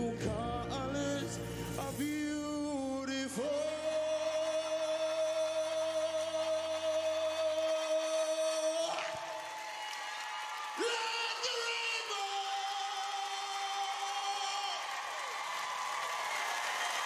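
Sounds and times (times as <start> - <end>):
backing music: 0.0 - 8.9
man singing long high note: 0.0 - 9.4, 10.7 - 15.1.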